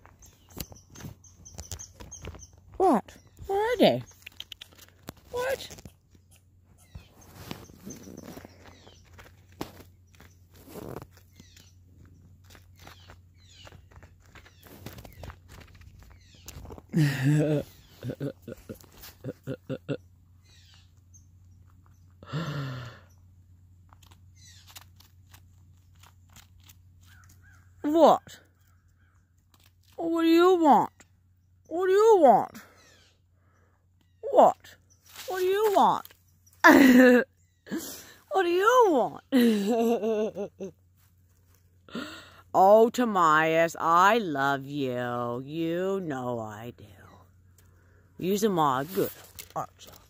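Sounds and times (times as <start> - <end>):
chipmunk clicks and rustles: 0.0 - 16.9, 23.8 - 27.8, 28.5 - 30.0, 34.9 - 36.7, 48.3 - 50.0.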